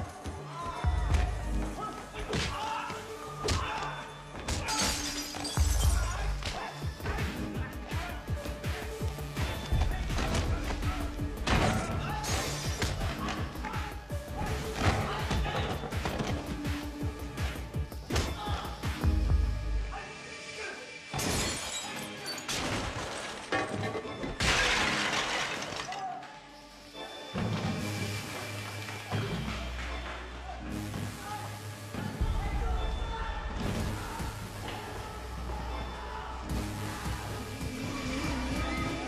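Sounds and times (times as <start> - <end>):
film score music: 0.0 - 24.6, 25.8 - 39.0
shattering crash: 21.2 - 26.1.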